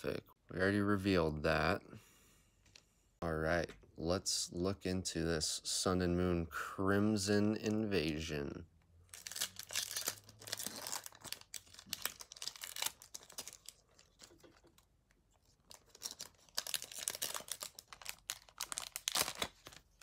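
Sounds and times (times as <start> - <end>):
foil wrapper crinkling and tearing: 9.1 - 20.0.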